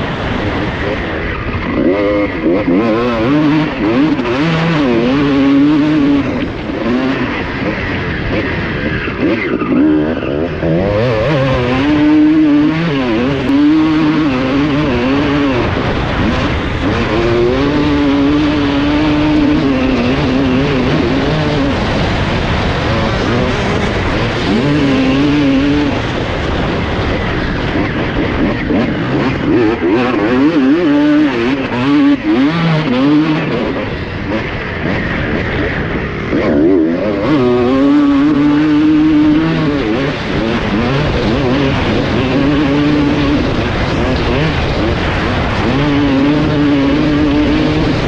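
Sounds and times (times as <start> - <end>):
motorcycle engine revving: 0.0 - 48.0.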